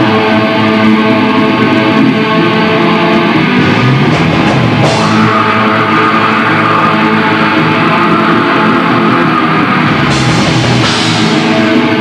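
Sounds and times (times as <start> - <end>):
black metal band playing live: 0.0 - 12.0.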